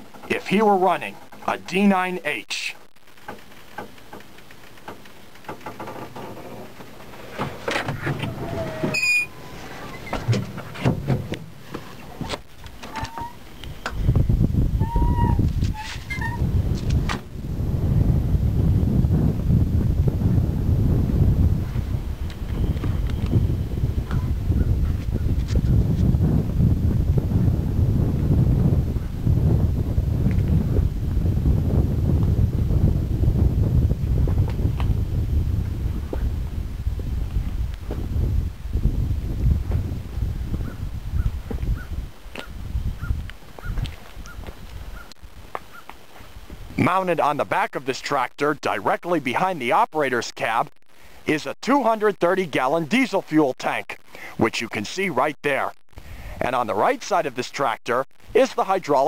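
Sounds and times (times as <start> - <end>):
wind rumble on microphone: 3.1 - 47.7, 55.9 - 57.0
metal door clicks and clunks: 7.3 - 11.5.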